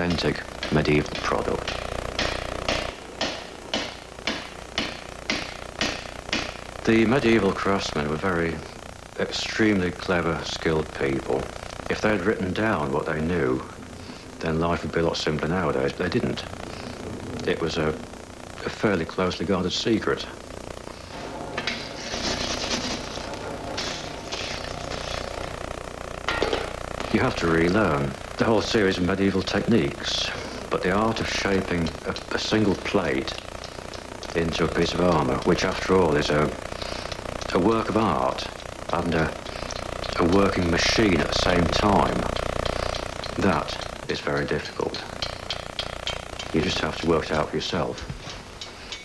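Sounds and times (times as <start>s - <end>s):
steady motor hum: 0.0s - 49.0s
hammer striking metal plate: 0.6s - 6.6s, 45.1s - 46.5s.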